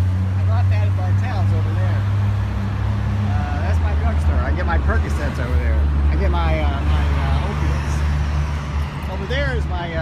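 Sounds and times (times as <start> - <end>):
traffic engine rumble: 0.0 - 10.0
people's voices: 3.2 - 10.0.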